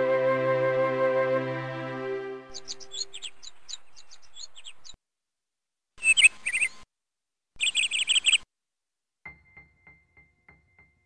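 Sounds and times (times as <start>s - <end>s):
birds chirping: 2.4s - 5.0s.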